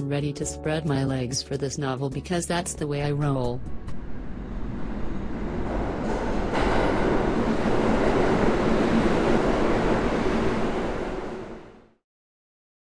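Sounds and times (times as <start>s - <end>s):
loud rumbling rush of noise: 3.6s - 11.9s.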